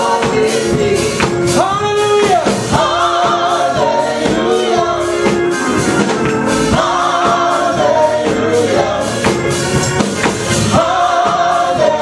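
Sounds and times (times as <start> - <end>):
gospel singers in harmony: 0.0 - 12.0
keyboard with steady beat: 0.0 - 12.0.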